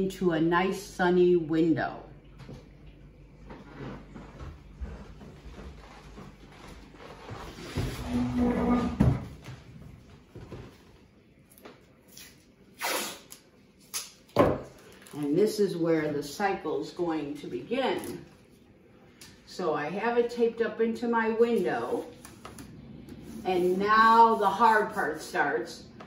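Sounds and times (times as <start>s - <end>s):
masking tape tearing off roll: 12.1s - 14.3s.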